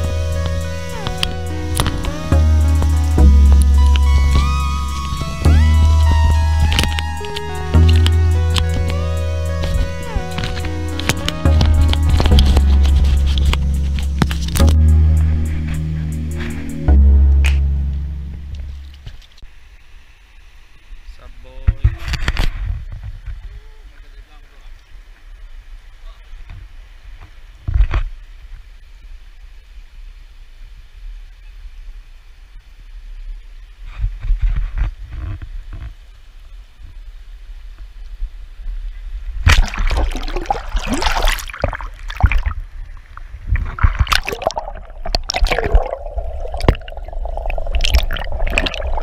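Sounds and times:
river water sloshing and flowing: 0.0s - 16.9s, 32.2s - 49.0s
wind rumble: 0.0s - 19.4s, 37.7s - 49.0s
loud water splashing: 39.4s - 49.0s.

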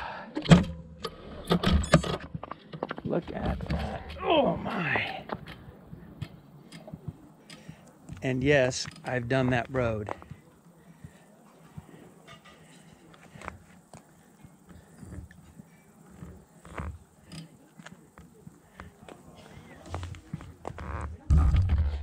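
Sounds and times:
faint clicks and rustles: 8.8s - 21.3s.

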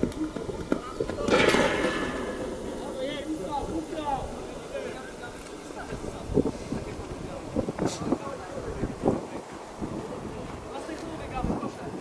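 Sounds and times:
open-air ambience: 0.0s - 12.0s
voices calling and shouting: 0.0s - 12.0s.

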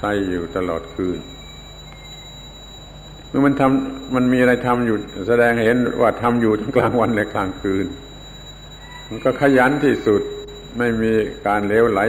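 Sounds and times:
man speaking: 0.0s - 1.3s, 3.4s - 8.0s, 9.1s - 12.0s
high-pitched whine: 0.0s - 12.0s
low hum: 0.0s - 12.0s.

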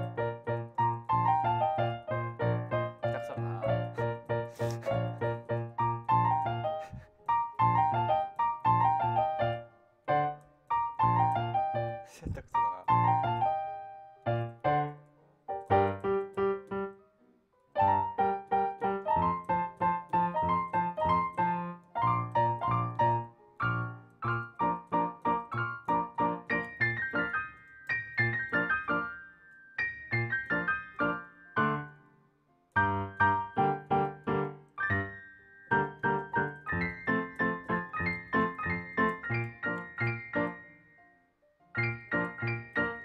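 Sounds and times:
jazz piano: 0.0s - 17.1s, 17.7s - 32.0s, 32.7s - 41.0s, 41.7s - 43.0s.

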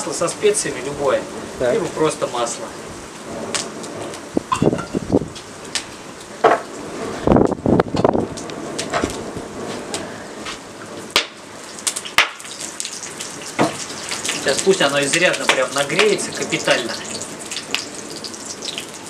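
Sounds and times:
wood fire crackling: 0.0s - 19.0s.

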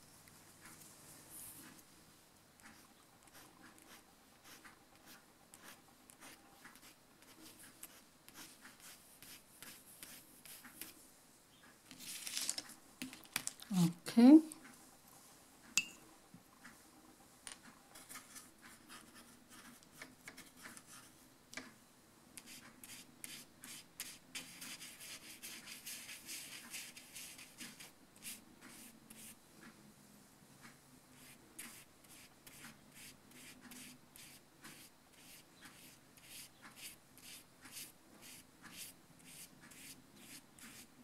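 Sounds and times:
pen scratching on paper: 2.6s - 11.0s, 17.9s - 21.1s, 22.4s - 29.4s, 31.2s - 40.9s.

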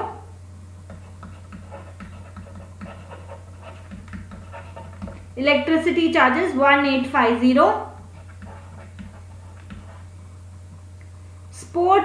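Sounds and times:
low electrical hum: 0.0s - 12.0s
stylus scratching on pen tablet: 0.9s - 5.3s, 8.0s - 10.1s.

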